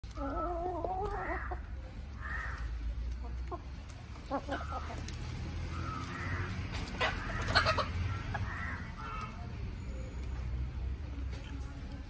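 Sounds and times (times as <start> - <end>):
chickens clucking: 0.0 - 9.7.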